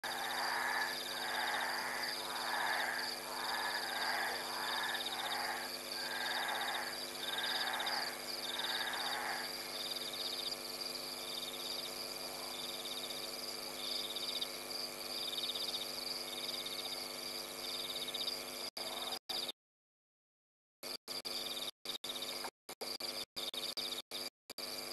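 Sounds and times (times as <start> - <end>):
frogs calling: 0.0 - 10.5
steady high hum: 0.0 - 13.3
high pulsed insect trill: 0.0 - 19.2.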